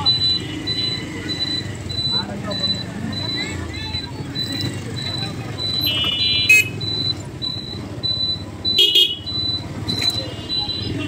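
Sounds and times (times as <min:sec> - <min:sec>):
people talking: 0:00.0 - 0:06.3, 0:09.9 - 0:11.0
street traffic engines: 0:00.0 - 0:11.0
vehicle horn honking: 0:05.8 - 0:06.8, 0:08.8 - 0:09.3.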